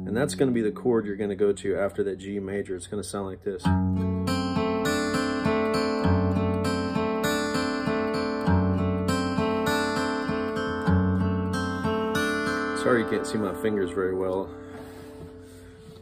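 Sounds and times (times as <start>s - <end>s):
acoustic guitar picked chords: 0.0s - 1.0s, 3.6s - 16.0s.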